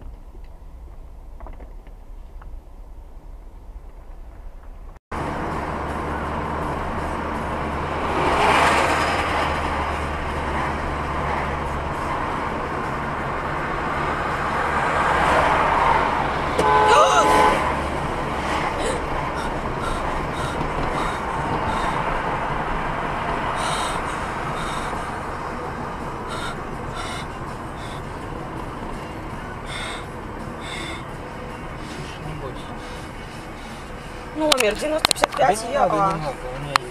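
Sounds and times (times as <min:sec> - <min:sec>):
road traffic noise: 0:00.0 - 0:36.9
vehicle horn honk: 0:16.6 - 0:18.1.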